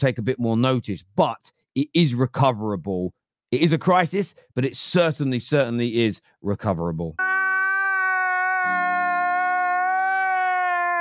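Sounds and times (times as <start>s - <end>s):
man crying wail: 7.2s - 11.0s.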